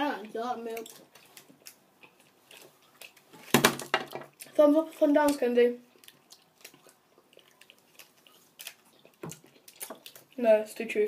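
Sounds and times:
person chewing candy: 0.8 - 3.5, 5.8 - 10.4.

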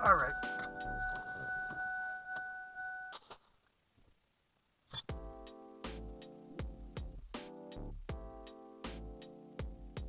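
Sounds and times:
car electronic warning tone: 0.0 - 3.2.

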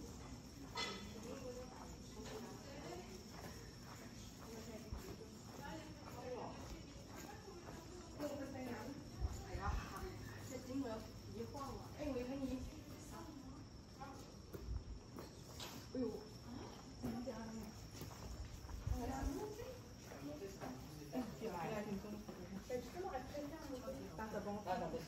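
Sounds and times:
insects trilling: 0.0 - 25.0.

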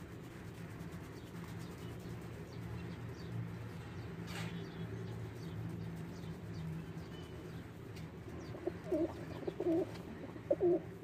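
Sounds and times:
steady low hum: 0.0 - 11.0
pigeon calls: 8.4 - 11.0.

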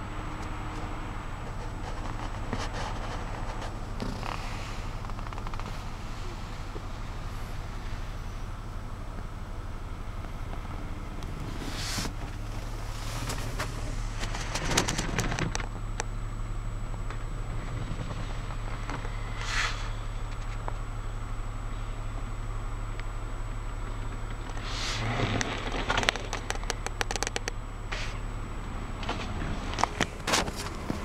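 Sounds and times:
steady low hum: 0.0 - 31.0
rustles and clicks: 0.4 - 8.6, 10.2 - 16.1, 24.0 - 28.3, 29.0 - 31.0.

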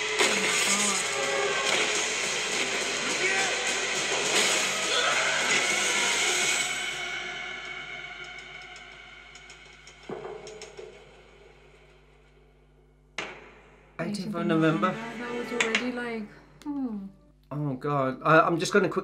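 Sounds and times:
trailer music and effects: 0.0 - 16.7.

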